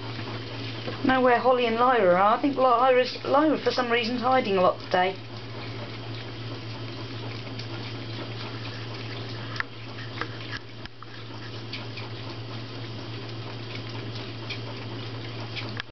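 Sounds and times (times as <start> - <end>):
animals lapping milk: 0.0 - 15.9
steady low hum: 0.0 - 15.9.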